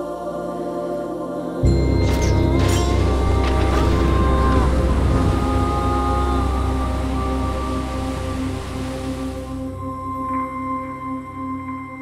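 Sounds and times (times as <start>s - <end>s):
dark ominous trailer music: 1.6s - 12.0s.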